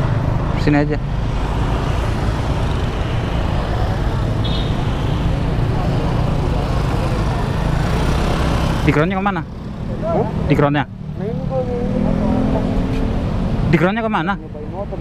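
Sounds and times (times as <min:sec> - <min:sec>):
road noise: 0:00.0 - 0:15.0.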